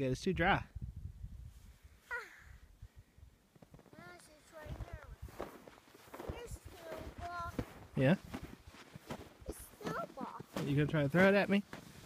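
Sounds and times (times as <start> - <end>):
child's voice: 2.1 - 2.6, 3.9 - 5.4, 6.1 - 7.8, 9.4 - 10.6
footsteps in dry snow: 3.5 - 12.0.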